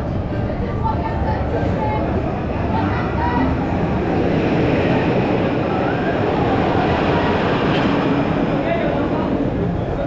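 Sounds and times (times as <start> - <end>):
faint voices: 0.0 - 10.0
loud rumbling noise: 0.0 - 10.0.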